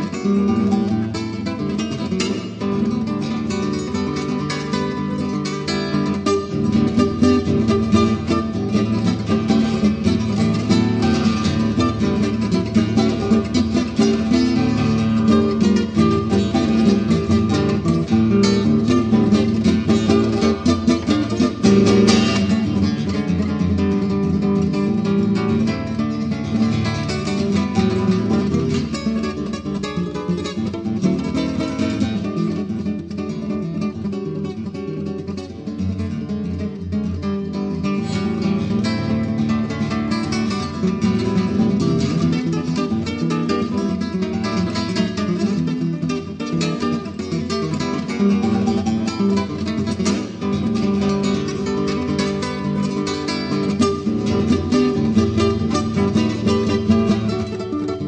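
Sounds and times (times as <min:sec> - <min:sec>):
fingerstyle nylon-string guitar: 0:00.0 - 0:58.0.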